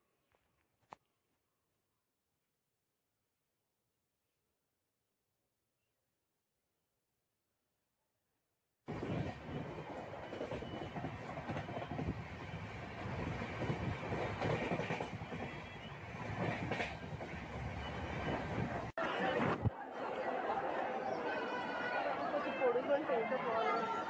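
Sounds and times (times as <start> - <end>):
train wheels rumbling: 8.9 - 18.9
people talking: 19.0 - 24.0.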